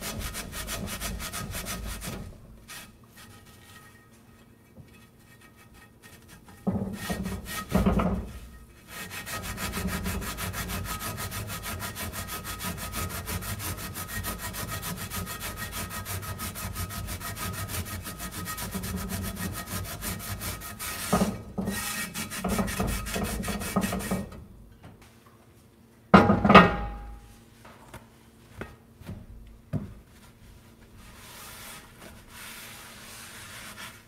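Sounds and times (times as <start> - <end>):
sponge scrubbing salt in skillet: 5.2 - 24.2, 30.9 - 34.0.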